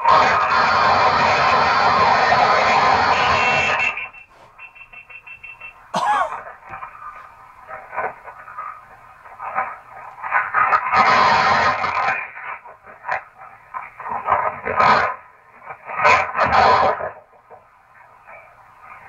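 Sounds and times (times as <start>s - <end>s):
harsh burst of noise: 0.0s - 17.3s.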